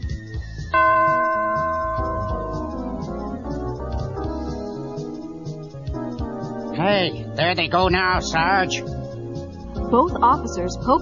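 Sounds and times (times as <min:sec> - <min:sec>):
quiet background music: 0:00.0 - 0:11.0
bell chime ringing: 0:00.7 - 0:04.3.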